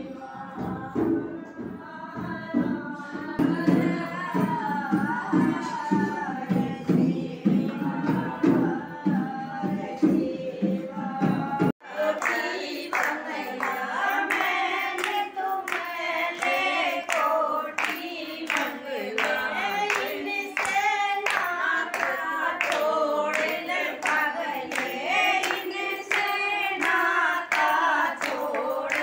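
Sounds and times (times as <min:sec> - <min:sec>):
women singing: 0:00.0 - 0:29.0
hand-claps: 0:11.9 - 0:29.0.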